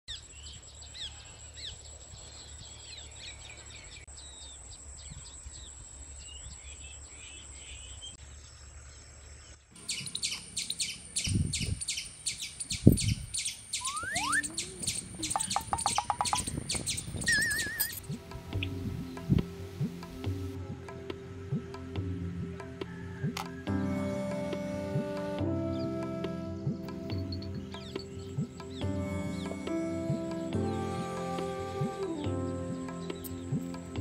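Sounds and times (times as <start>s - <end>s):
birds chirping and twittering: 0.1s - 34.0s
fast high pulsing chirp: 9.8s - 19.3s
short rising whistle: 13.8s - 14.8s, 17.2s - 18.0s
thin steady high tone: 13.8s - 16.5s
low thuds: 14.9s - 25.6s.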